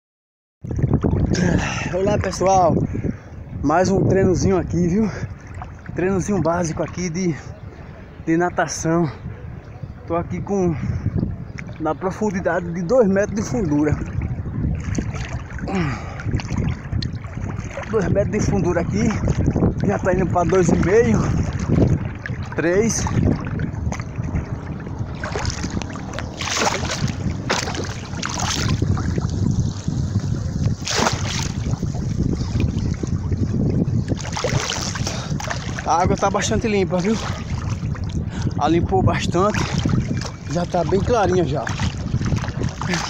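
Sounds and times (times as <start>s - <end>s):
river water sloshing and splashing: 0.6s - 3.6s, 4.6s - 8.3s, 11.2s - 43.0s
wind on microphone: 0.6s - 43.0s.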